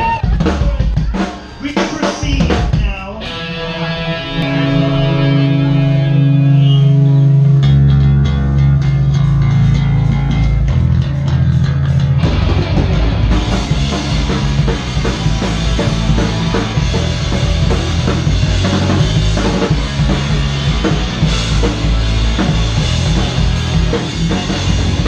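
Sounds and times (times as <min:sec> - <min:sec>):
live punk rock band: 0:00.0 - 0:25.0
ringing held guitar chord: 0:03.6 - 0:08.7
drum hits: 0:12.2 - 0:25.0.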